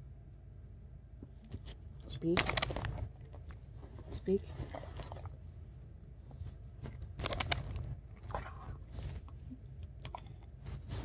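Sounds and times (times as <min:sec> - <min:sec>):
dog chewing and crunching: 0:02.1 - 0:05.6, 0:06.8 - 0:11.0.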